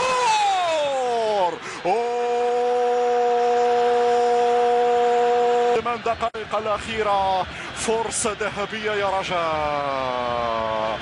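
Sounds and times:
commentator's sustained shout: 0:00.0 - 0:06.2
crowd noise: 0:00.0 - 0:11.0.

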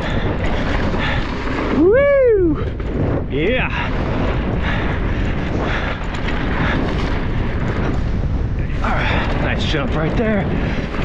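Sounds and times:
tyres on dirt trail: 0:00.0 - 0:11.0
wind buffeting microphone: 0:00.0 - 0:11.0.

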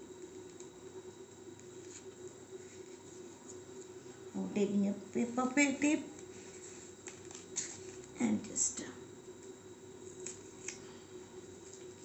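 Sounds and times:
low background hum: 0:00.0 - 0:12.0
newspaper rustling and crinkling: 0:06.2 - 0:08.2, 0:09.4 - 0:12.0.

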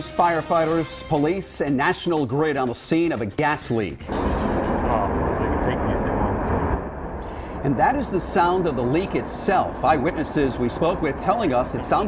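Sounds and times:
gas rushing roar: 0:04.1 - 0:12.0.

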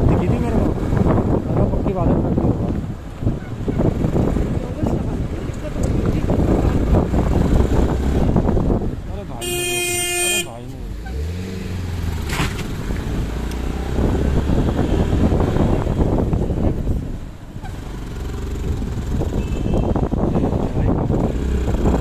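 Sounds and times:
traffic engine and road noise: 0:00.0 - 0:22.0
engine revving: 0:03.6 - 0:17.0, 0:17.6 - 0:22.0
vehicle horn blast: 0:09.4 - 0:10.6, 0:19.3 - 0:20.1.

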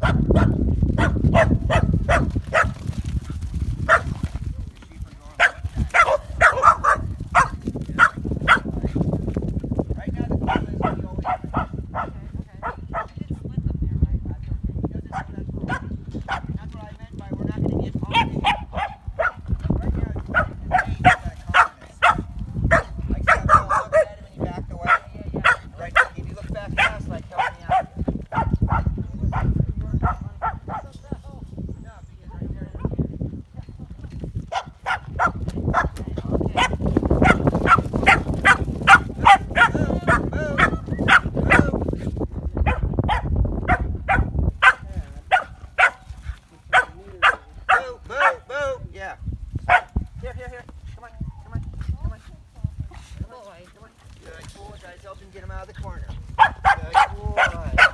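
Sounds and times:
young dog barking rapidly: 0:00.0 - 0:02.8, 0:03.8 - 0:04.2, 0:05.4 - 0:08.8, 0:10.4 - 0:13.1, 0:18.1 - 0:19.5, 0:20.3 - 0:24.2, 0:24.8 - 0:30.9, 0:34.5 - 0:41.8, 0:42.6 - 0:46.1, 0:46.7 - 0:48.5, 0:49.7 - 0:50.0, 0:56.4 - 0:57.9.

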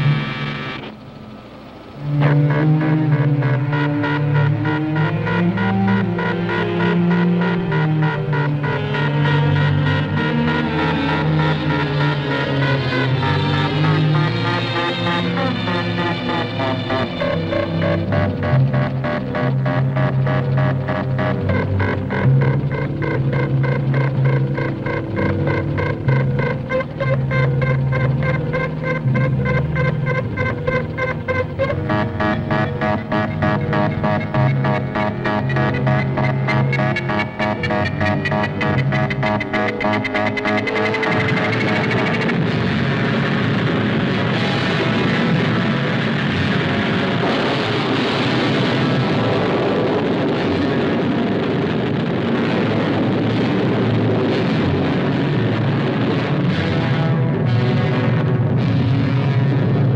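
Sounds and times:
rapidly pulsing film score: 0:00.0 - 0:59.9.

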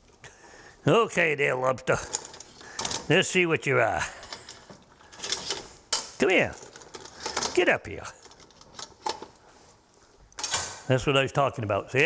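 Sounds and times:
metal kitchenware clattering: 0:02.0 - 0:03.1, 0:04.1 - 0:07.6, 0:10.4 - 0:10.9.

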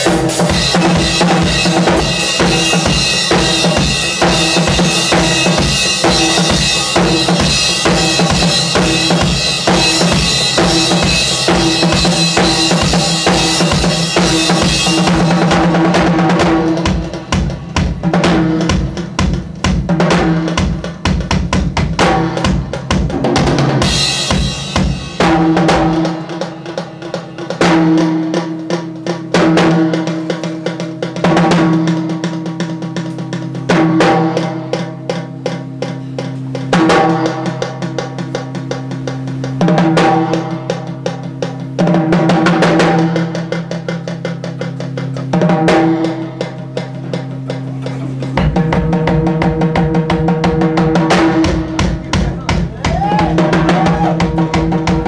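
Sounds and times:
ringing cymbal crashes: 0:00.0 - 0:15.8
bass drum and snare hits: 0:00.0 - 0:55.0.

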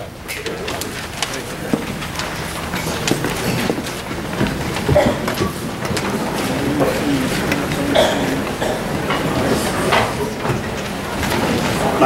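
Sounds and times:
chairs knocking and clicking: 0:00.0 - 0:12.0
low murmuring voices: 0:00.0 - 0:12.0
shuffling feet: 0:00.2 - 0:12.0.

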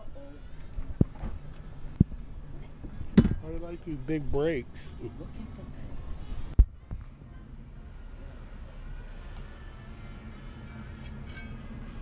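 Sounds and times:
man speaking: 0:03.4 - 0:05.1.

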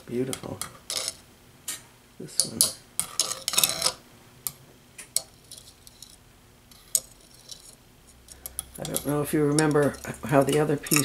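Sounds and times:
dish shifting on stone: 0:00.4 - 0:01.2, 0:02.4 - 0:04.0, 0:05.1 - 0:11.0
metal tongs clinking on dish: 0:05.2 - 0:11.0.

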